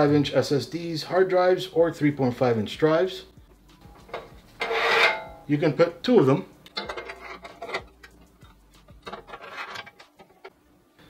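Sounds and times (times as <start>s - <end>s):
hand rubbing sheet steel: 3.8s - 5.4s, 6.8s - 10.5s.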